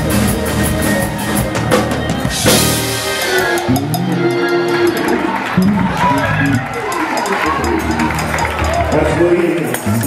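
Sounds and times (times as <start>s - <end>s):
gospel band playing: 0.0s - 10.0s.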